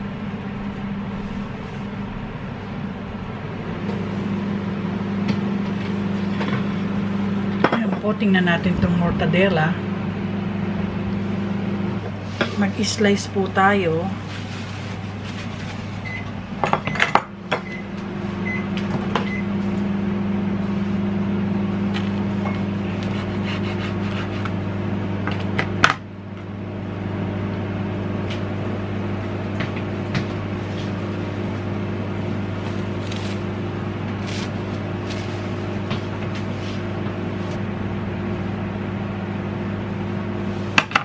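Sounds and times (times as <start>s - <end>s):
kitchen appliance electric hum: 0.0s - 41.0s
plastic film crinkling: 32.7s - 33.5s, 34.2s - 35.4s.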